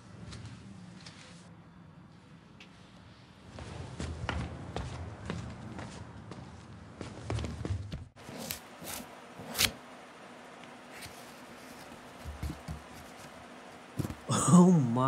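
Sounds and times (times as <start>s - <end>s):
knife slitting packing tape: 8.3s - 9.8s.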